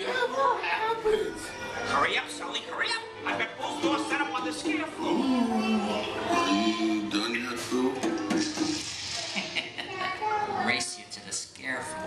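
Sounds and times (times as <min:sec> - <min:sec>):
background music: 0:00.0 - 0:11.1.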